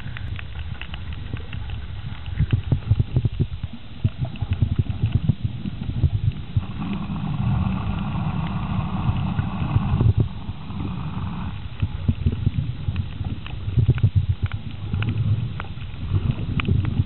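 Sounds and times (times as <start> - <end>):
motor hum: 0.0 - 16.9.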